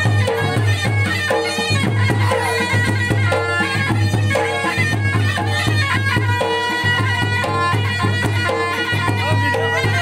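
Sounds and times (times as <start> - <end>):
drums beating: 0.0 - 10.0
shrill reed pipe melody: 0.0 - 10.0.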